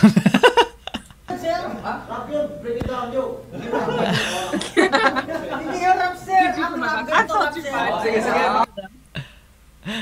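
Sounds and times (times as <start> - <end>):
people talking: 1.3 - 8.9
people laughing: 3.5 - 7.4.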